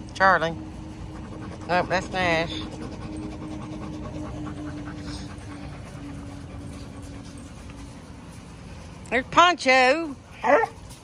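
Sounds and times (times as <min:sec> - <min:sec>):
steady low hum: 0:00.0 - 0:11.0
dog panting: 0:00.4 - 0:09.5.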